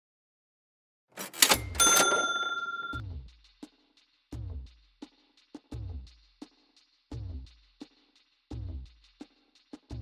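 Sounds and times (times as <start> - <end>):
bright bell-like ding: 1.4 - 3.0.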